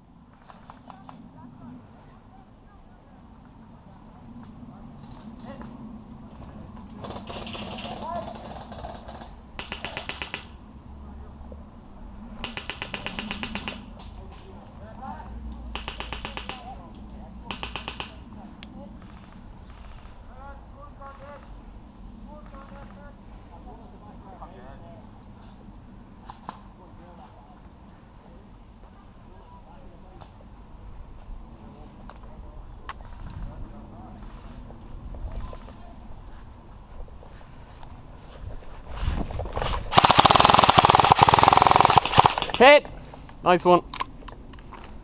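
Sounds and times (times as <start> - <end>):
airsoft rifle full-auto bursts: 7.1 - 10.6, 12.4 - 13.8, 17.5 - 18.2, 39.9 - 42.7.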